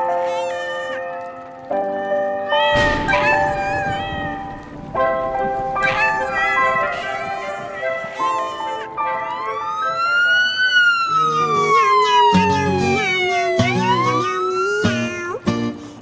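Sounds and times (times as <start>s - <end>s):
emergency siren wailing: 2.7s - 15.1s.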